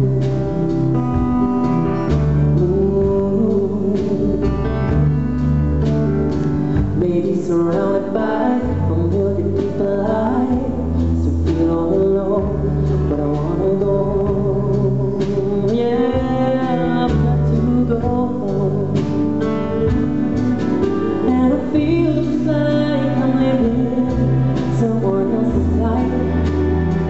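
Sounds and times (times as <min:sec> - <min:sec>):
man singing a ballad: 0:00.0 - 0:01.2, 0:02.4 - 0:05.1, 0:06.7 - 0:27.0
low bass notes: 0:00.0 - 0:27.0
strummed acoustic guitar: 0:00.0 - 0:27.0.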